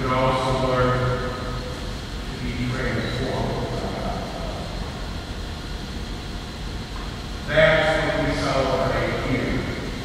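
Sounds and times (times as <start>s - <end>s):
steady low hum: 0.0s - 10.0s
man speaking: 2.3s - 4.8s, 7.5s - 9.7s.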